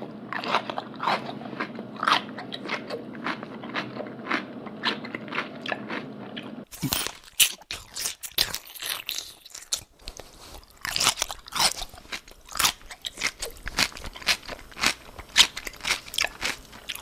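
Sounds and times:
person chewing crunchy food: 0.0 - 17.0.

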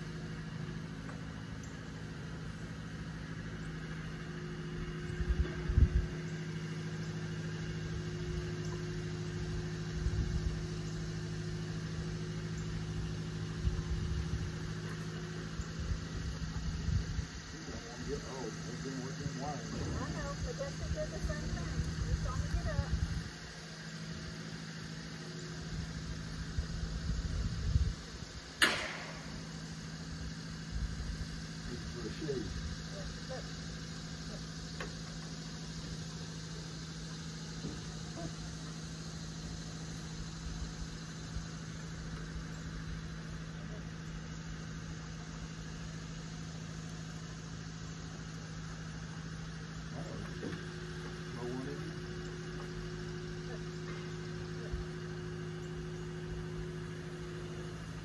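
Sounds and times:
engine idling: 0.0 - 58.0
sharp click: 28.6 - 29.4.

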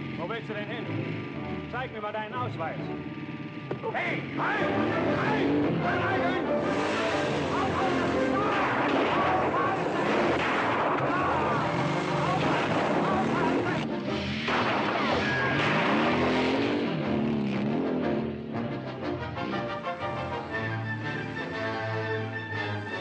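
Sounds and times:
motorcycle engine revving: 0.0 - 23.0
orchestral music: 4.4 - 10.4, 16.6 - 23.0.

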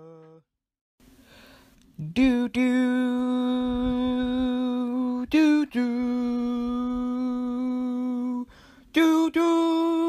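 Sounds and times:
person humming: 0.0 - 0.5.

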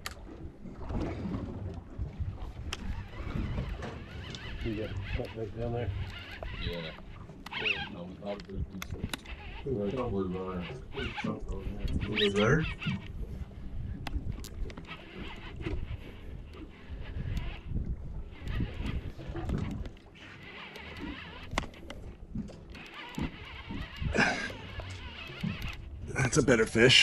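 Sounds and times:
muffled voices: 7.6 - 12.8.

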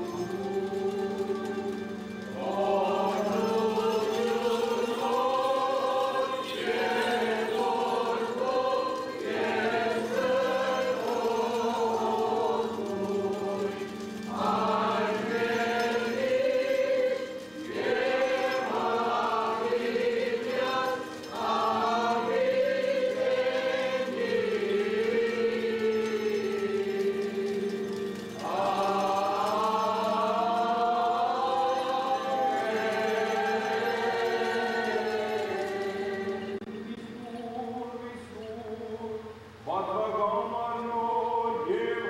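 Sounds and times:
choir chanting a hymn: 0.0 - 42.0.

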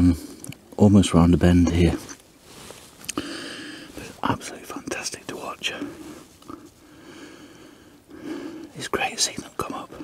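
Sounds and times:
man whispering: 3.9 - 6.3, 8.6 - 10.0.

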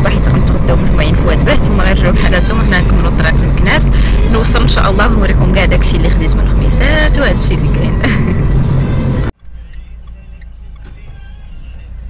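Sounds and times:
car road and engine rumble: 0.0 - 12.0
faint music: 0.0 - 12.0.

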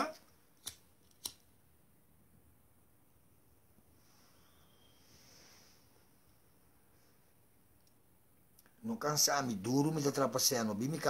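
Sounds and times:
lighter click: 0.6 - 1.4.

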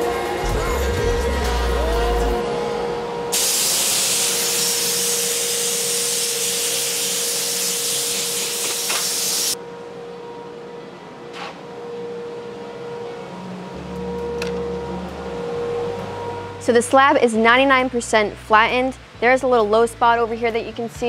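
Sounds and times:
compressed air blow gun hissing: 3.4 - 9.6.

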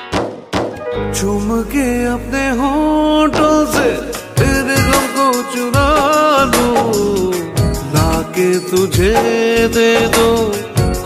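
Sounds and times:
film song melody over bass: 0.8 - 5.0.

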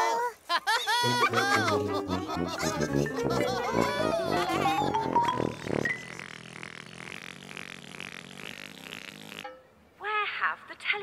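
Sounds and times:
low hum: 1.1 - 7.6.

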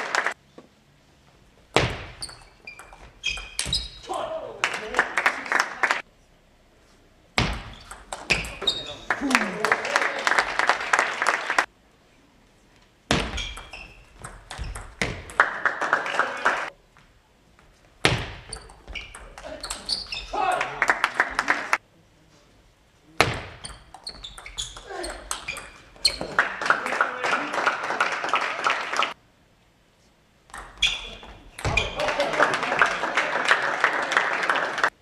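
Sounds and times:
spectators clapping: 0.0 - 0.4, 4.6 - 6.1, 8.9 - 11.7, 15.3 - 16.7, 20.5 - 21.8, 26.2 - 29.2, 31.9 - 35.0.

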